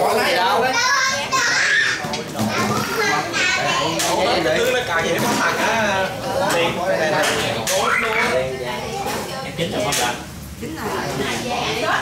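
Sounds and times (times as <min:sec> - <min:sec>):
group of voices talking and calling: 0:00.0 - 0:12.0.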